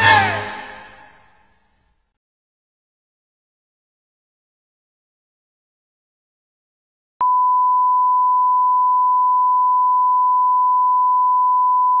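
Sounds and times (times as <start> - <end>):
steady test tone beep: 7.2 - 12.0.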